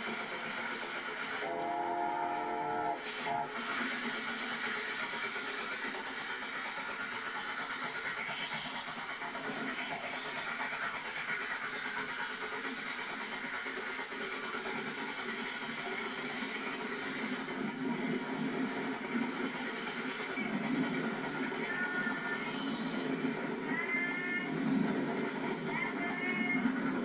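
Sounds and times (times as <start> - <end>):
steam train passing: 0.0 - 27.0
steam locomotive whistle: 1.3 - 4.1.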